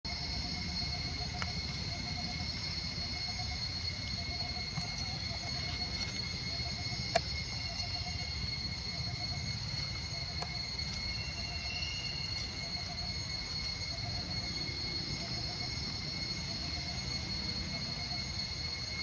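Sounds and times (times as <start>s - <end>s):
insects droning: 0.0s - 19.0s.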